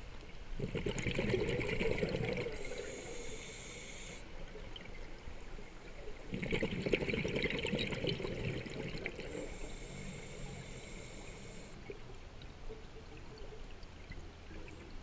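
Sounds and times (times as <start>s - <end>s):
quiet water: 0.0s - 15.0s
exhaled bubbles burbling: 0.6s - 2.8s, 6.0s - 9.6s
regulator hissing inhale: 2.6s - 4.3s, 9.3s - 11.8s.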